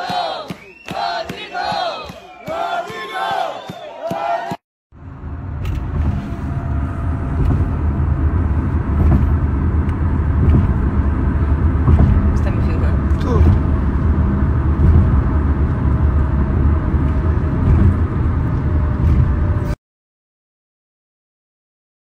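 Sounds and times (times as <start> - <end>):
car road noise rumble: 4.9 - 19.8.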